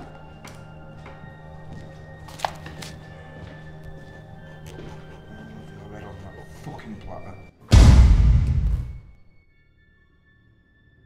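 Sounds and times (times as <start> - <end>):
background music drone: 0.0 - 11.0.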